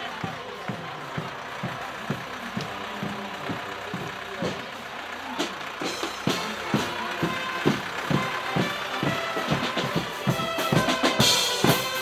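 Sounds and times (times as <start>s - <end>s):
parade music beat: 0.0s - 12.0s
tractor diesel engine passing: 0.0s - 12.0s.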